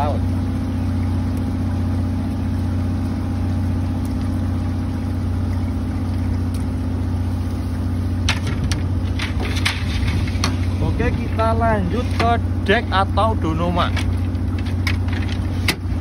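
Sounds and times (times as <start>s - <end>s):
boat engine idling: 0.0s - 16.0s
sharp clicks and knocks: 8.3s - 10.7s, 13.9s - 15.9s.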